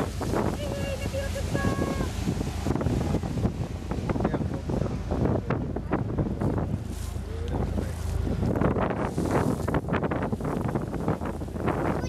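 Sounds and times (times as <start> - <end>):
boat engine hum: 0.0 - 12.0
water rushing along hull: 0.0 - 12.0
wind buffeting microphone: 0.0 - 12.0.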